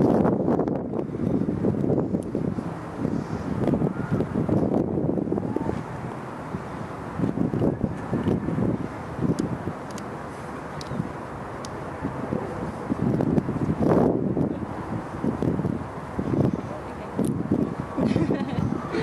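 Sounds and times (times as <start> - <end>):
wind buffeting microphone: 0.0 - 19.0.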